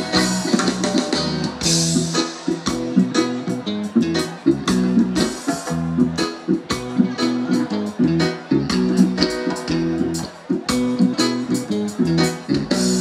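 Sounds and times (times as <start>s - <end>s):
guitar chords: 0.0s - 13.0s
reggae band playing: 0.0s - 13.0s
steady drum beat: 0.0s - 13.0s.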